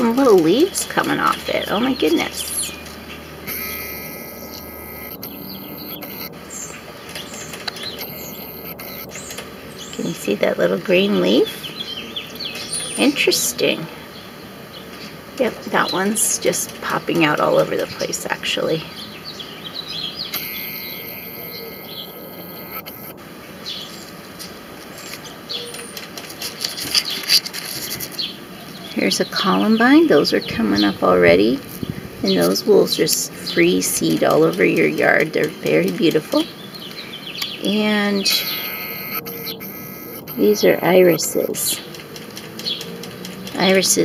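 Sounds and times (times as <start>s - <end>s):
outdoor background noise: 0.0s - 44.0s
steady high whine: 0.0s - 44.0s
faint high bird chirps: 0.4s - 13.4s, 18.7s - 24.1s, 32.2s - 41.9s.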